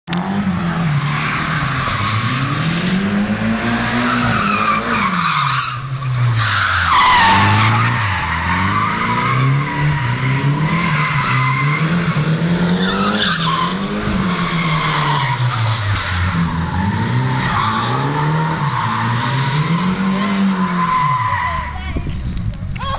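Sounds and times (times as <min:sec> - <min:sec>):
car engine revving: 0:00.1 - 0:21.7.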